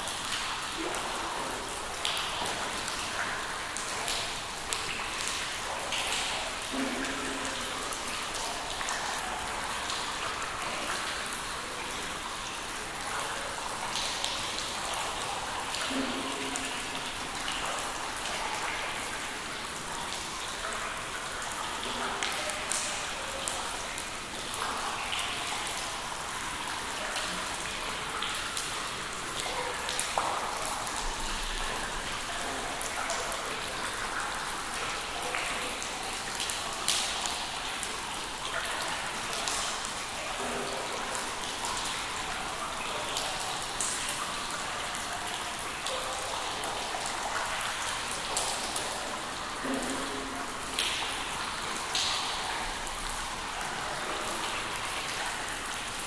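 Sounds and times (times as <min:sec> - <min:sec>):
water drops plinking into water: 0:00.0 - 0:11.0, 0:13.9 - 0:21.2, 0:44.9 - 0:55.8
dripping and trickling water hiss: 0:00.0 - 0:56.0.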